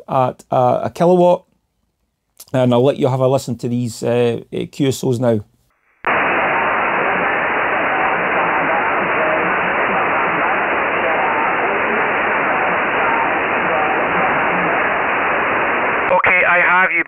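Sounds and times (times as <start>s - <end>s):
weak radio stations: 5.8s - 17.0s
radio band noise hiss: 6.1s - 17.0s.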